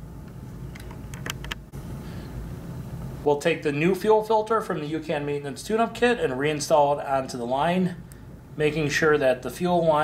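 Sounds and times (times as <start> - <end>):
steady low hum: 0.0 - 10.0
small clicks and rubbing: 0.7 - 1.6.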